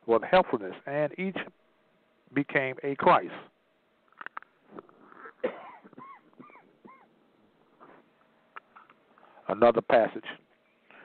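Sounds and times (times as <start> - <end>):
animal whining calls: 4.8 - 7.2.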